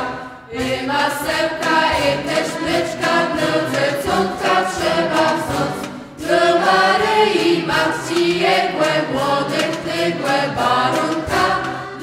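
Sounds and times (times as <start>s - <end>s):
mixed choir singing a carol: 0.0s - 12.0s.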